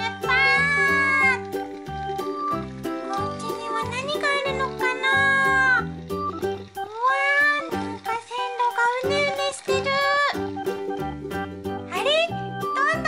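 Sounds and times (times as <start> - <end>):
children's music with meowing synth: 0.0 - 13.0.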